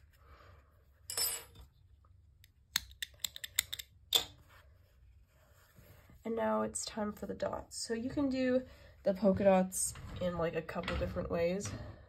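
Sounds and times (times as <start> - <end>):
crochet hook and scissors clicking: 2.7 - 4.3.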